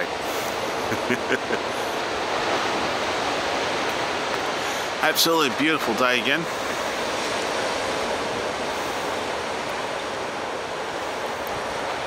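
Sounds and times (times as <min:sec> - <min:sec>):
distant surf breaking: 0:00.0 - 0:12.0.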